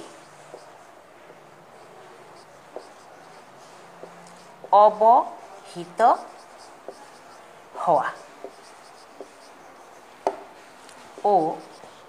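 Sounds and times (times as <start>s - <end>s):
marker pen scratching on whiteboard: 0.0s - 12.0s.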